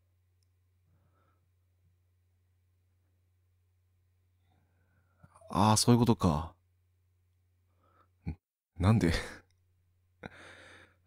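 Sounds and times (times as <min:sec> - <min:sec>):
breathy sigh: 0:10.2 - 0:11.0.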